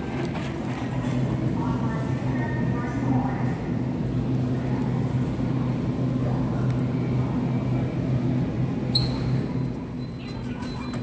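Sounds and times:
shopping cart wheels rumbling: 0:00.0 - 0:01.9, 0:07.9 - 0:11.0.

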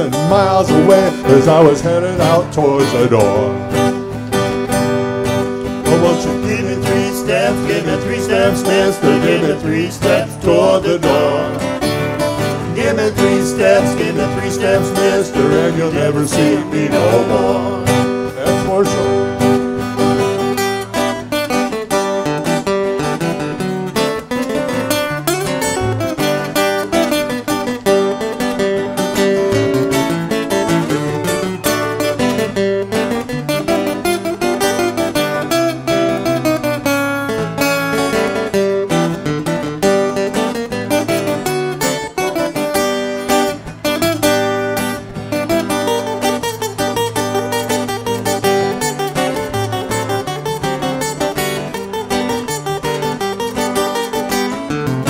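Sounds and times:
acoustic guitars playing country-rock: 0:00.0 - 0:55.0.

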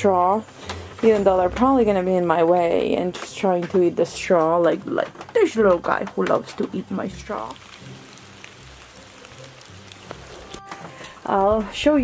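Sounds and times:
rain falling steadily: 0:05.4 - 0:12.0.

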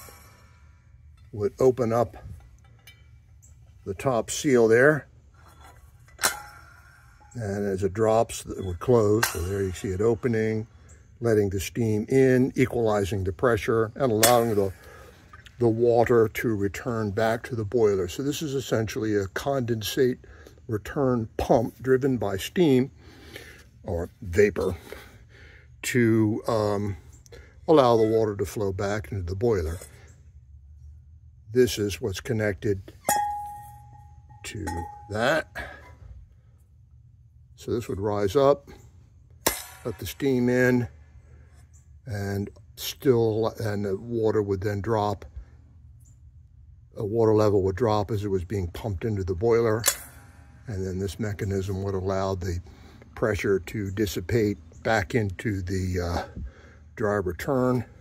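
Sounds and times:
metal part struck ringing: 0:00.0 - 0:04.6, 0:05.6 - 0:07.4, 0:08.5 - 0:10.3, 0:33.0 - 0:35.9, 0:39.4 - 0:40.5
metallic clink with ring: 0:02.6 - 0:03.5, 0:33.0 - 0:35.7.

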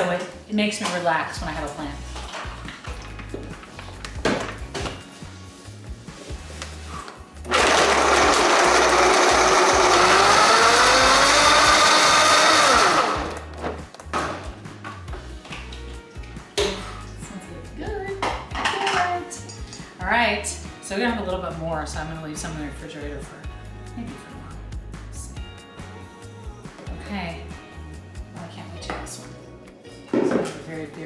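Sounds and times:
blender blending ice: 0:07.5 - 0:13.5.

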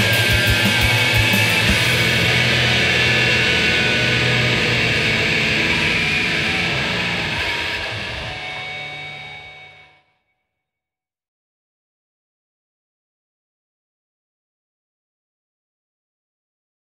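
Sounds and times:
loud rock song: 0:00.0 - 0:09.9.

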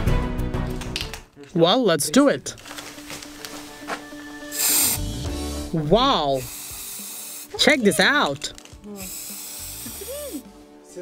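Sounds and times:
spray can hissing: 0:04.4 - 0:10.5.

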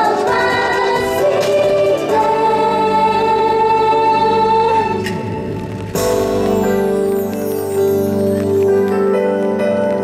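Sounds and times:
pop backing track: 0:00.0 - 0:10.0.

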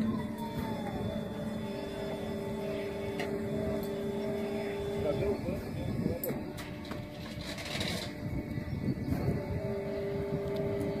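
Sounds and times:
steady hum: 0:00.0 - 0:11.0
wind buffeting microphone: 0:04.4 - 0:11.0.

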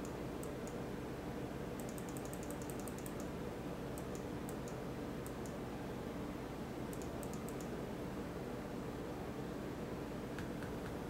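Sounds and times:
low room hum: 0:00.0 - 0:11.0
computer clicks: 0:01.8 - 0:03.3, 0:04.0 - 0:05.6, 0:06.9 - 0:07.7.

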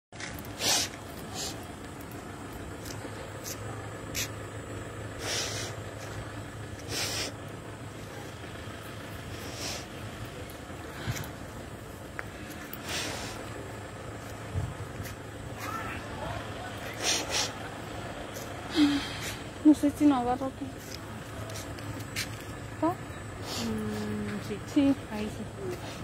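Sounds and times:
street traffic hum: 0:00.1 - 0:26.0
woman sniffing: 0:00.6 - 0:01.6, 0:05.2 - 0:05.8, 0:06.8 - 0:07.4, 0:18.7 - 0:19.5, 0:23.4 - 0:24.0.

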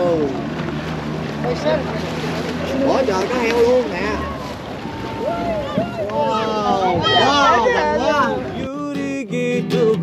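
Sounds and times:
boat motor humming: 0:00.0 - 0:10.0
water noise: 0:00.0 - 0:10.0
wind: 0:00.0 - 0:10.0.

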